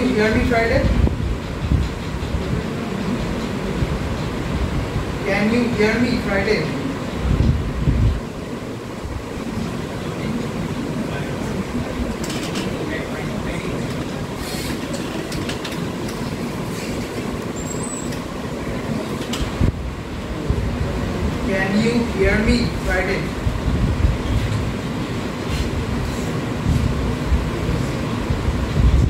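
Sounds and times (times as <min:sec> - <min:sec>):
rumbling room noise: 0:00.0 - 0:29.0.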